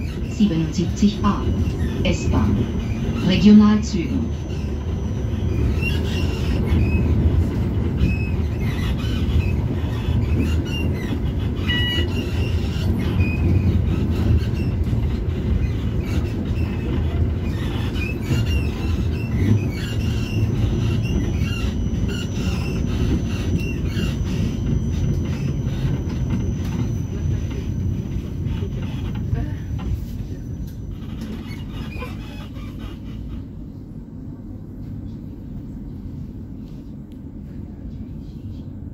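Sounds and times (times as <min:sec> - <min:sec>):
high wheel squeals: 0:00.0 - 0:33.8
tram wheels rumbling on rails: 0:00.0 - 0:38.9.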